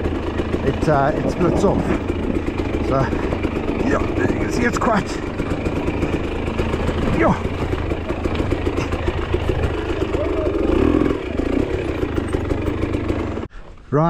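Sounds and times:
bike rattle: 0.0s - 13.5s
motorcycle engine rumbling: 0.0s - 13.6s.

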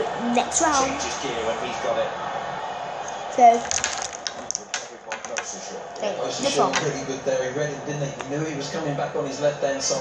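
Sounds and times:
plastic tubes clicking and tapping: 3.6s - 5.6s.

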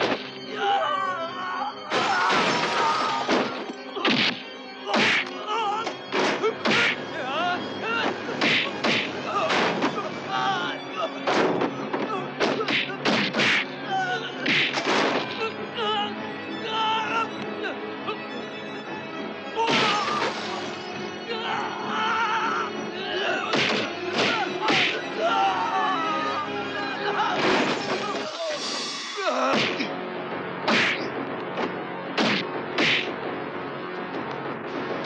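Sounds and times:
background music score: 0.0s - 35.0s
heavy punch hits: 30.7s - 31.0s, 32.2s - 33.1s.

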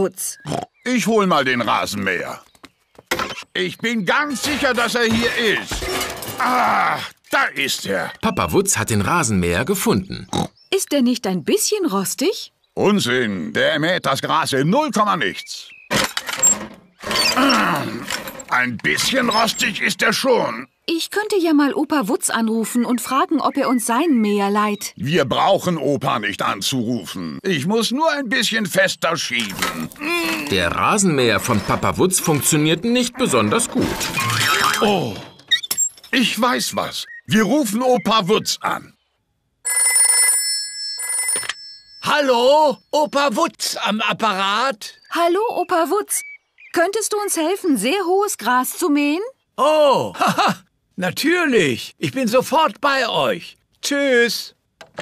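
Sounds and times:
reel mower rattling: 15.9s - 19.6s
old telephone bell ringing: 39.7s - 43.2s.

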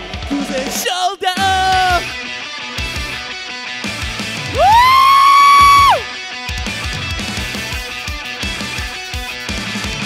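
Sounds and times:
loud rock music: 0.0s - 10.0s.

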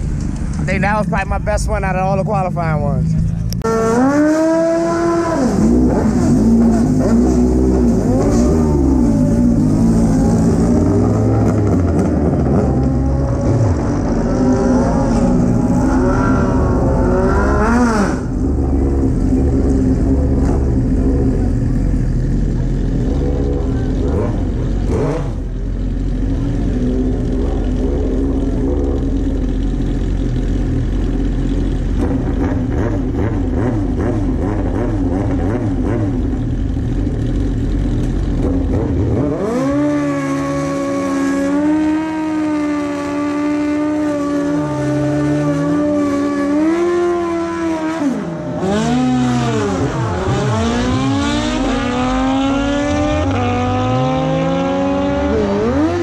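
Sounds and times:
motorcycles revving: 0.0s - 56.0s
motorcycle engine idling: 18.3s - 33.9s, 36.0s - 39.0s.

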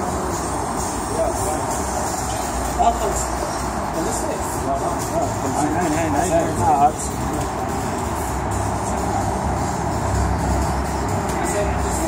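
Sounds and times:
street background noise: 0.0s - 12.0s.

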